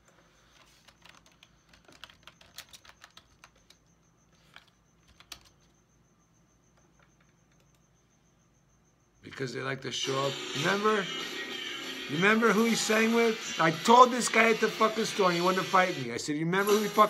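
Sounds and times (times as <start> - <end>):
computer keyboard typing: 0.0 - 5.8, 6.9 - 7.8.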